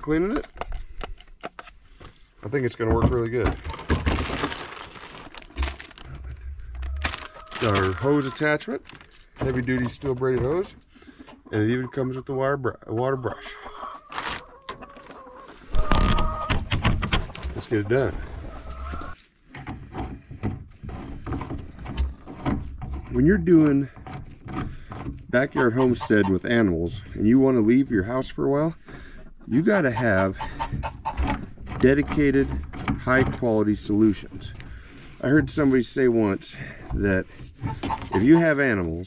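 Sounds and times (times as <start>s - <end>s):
hands handling hose fittings: 0.0s - 11.2s, 30.4s - 38.9s
plastic packaging crinkling: 3.6s - 9.4s, 14.1s - 16.3s.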